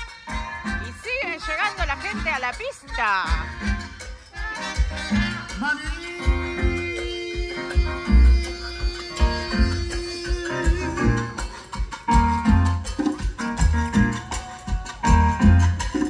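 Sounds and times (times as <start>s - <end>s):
live salsa band playing: 0.0s - 16.0s.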